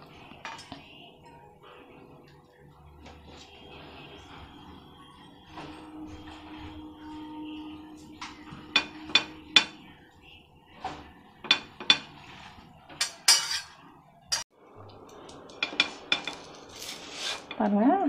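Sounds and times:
knife scraping bread: 16.7 - 17.6.

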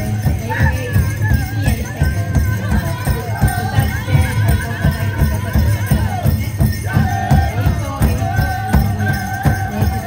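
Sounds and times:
bass drumbeat: 0.0 - 10.0
bells jingling: 0.0 - 10.0.

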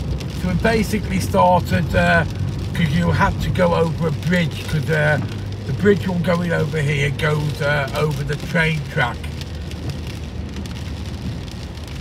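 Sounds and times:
car and tyres rumbling: 0.0 - 12.0
rain on car roof: 0.0 - 12.0.

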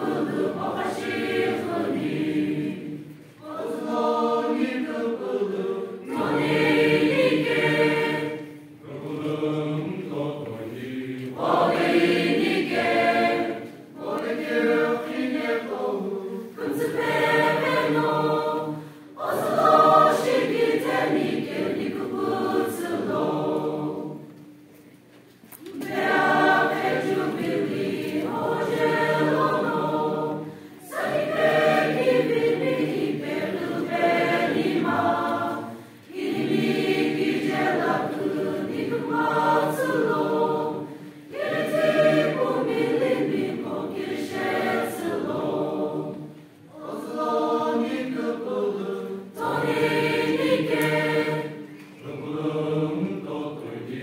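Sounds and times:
mixed choir singing a hymn: 0.0 - 24.8, 25.5 - 54.0.

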